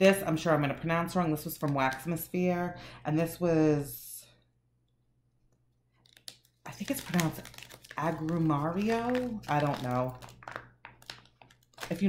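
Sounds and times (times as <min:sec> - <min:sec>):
woman's voice: 0:00.0 - 0:04.3, 0:06.7 - 0:10.2.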